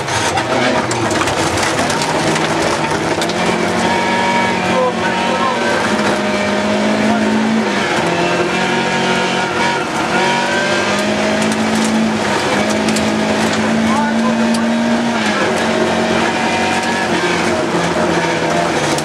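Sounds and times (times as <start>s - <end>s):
gravel road noise: 0.0s - 19.0s
rally car engine revving: 0.0s - 19.0s.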